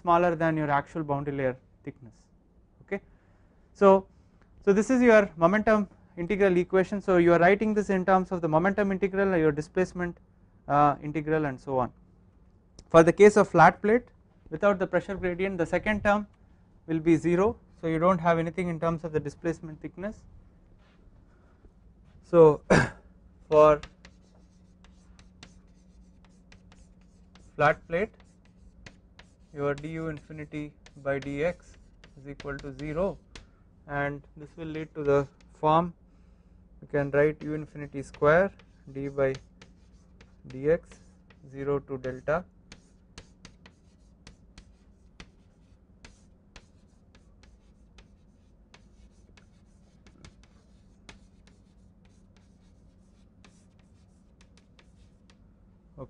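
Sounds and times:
chalk tapping and scratching: 23.5 - 33.5, 34.4 - 35.6, 37.0 - 55.5.

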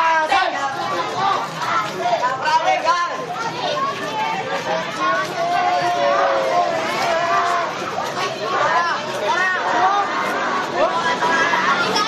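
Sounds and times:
crowd hubbub: 0.0 - 12.0
young people chattering: 0.0 - 12.0.

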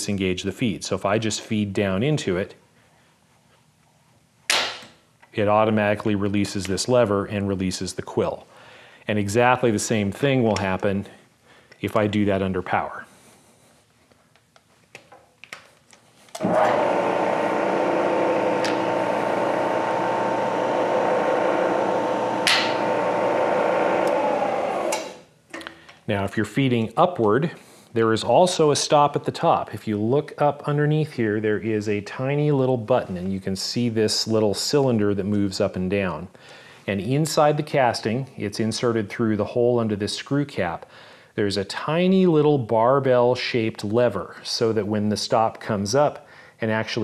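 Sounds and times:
milling machine motor whining: 16.4 - 25.2
sharp ringing clack of depth stop: 22.4 - 22.9.

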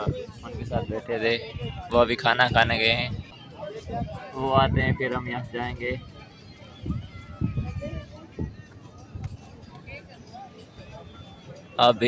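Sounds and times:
faint background voices: 0.0 - 12.0
low murmurs close to microphone: 0.0 - 12.0.

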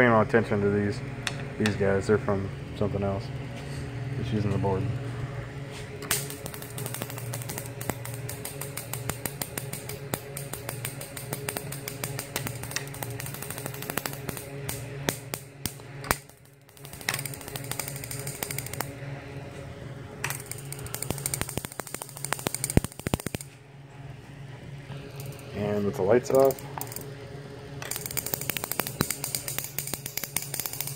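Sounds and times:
transformer hum: 0.0 - 30.9
electric sparks snapping: 6.0 - 19.0, 20.2 - 23.6, 25.0 - 27.1, 27.8 - 30.9.

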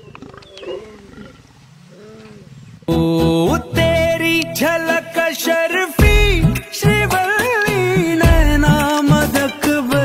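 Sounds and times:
lion growling: 0.0 - 2.9.

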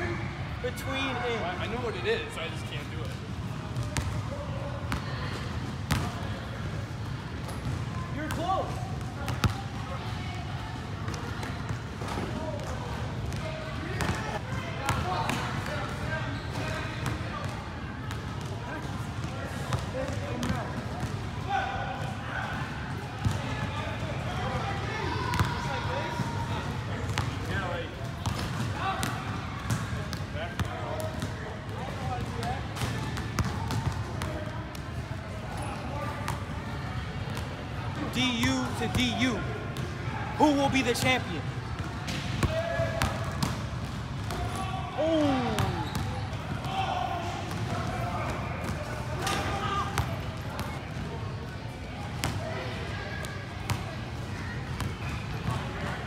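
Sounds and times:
chatter of voices: 44.4 - 56.0.

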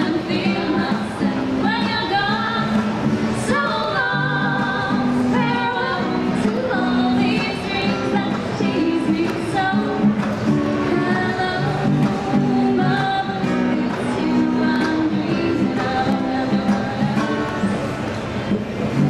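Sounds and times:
two women singing together: 0.0 - 17.8
strummed acoustic guitar: 0.0 - 19.0.

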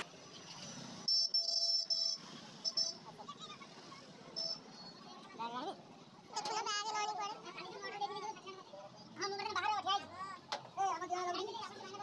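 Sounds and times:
faint street background: 0.0 - 12.0.

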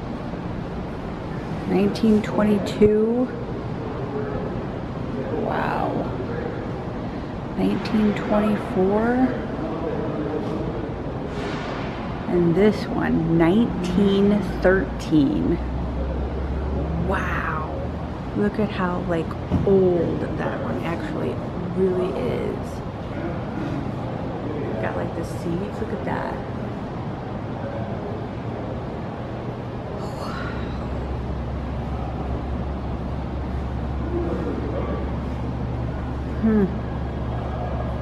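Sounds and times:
hall hum and hiss: 0.0 - 38.0
faint indistinct voices: 1.3 - 12.8, 15.1 - 38.0.

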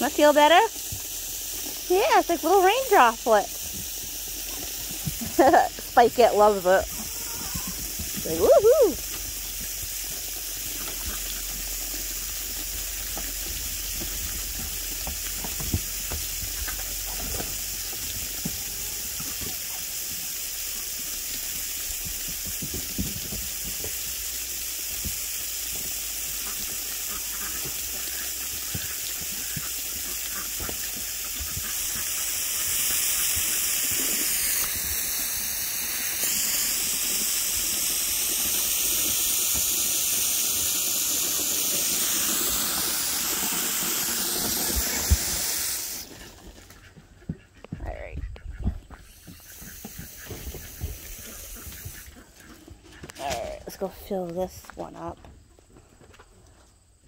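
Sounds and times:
garden hose spraying water: 0.0 - 46.9, 48.9 - 55.2.

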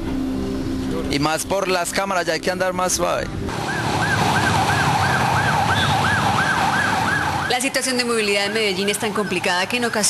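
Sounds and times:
low hum of traffic: 0.0 - 10.0
ambulance siren yelping: 3.5 - 10.0.

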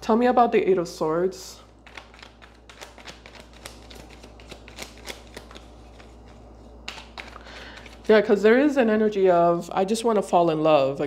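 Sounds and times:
cards being shuffled: 1.8 - 8.2.

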